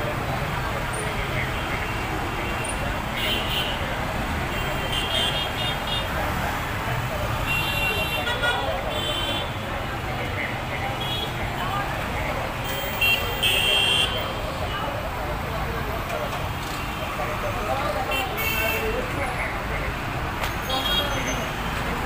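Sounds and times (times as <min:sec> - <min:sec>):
crowd voices: 0:00.0 - 0:22.0
traffic engines: 0:00.0 - 0:22.0.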